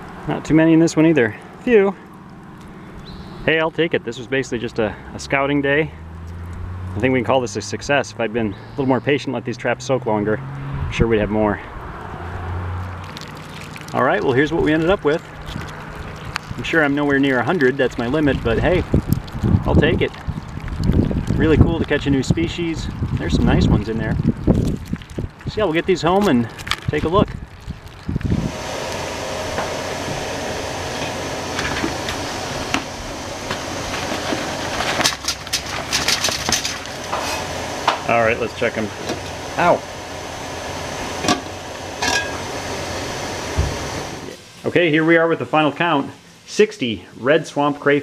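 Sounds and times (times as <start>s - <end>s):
water dripping and trickling: 0.9s - 3.3s, 6.0s - 7.0s, 11.9s - 28.4s
water boiling hard in pot: 12.8s - 44.7s
low hum: 26.5s - 44.4s
container clattering into pot: 33.9s - 38.0s, 41.2s - 42.4s
pot lid clattering: 41.3s - 42.4s.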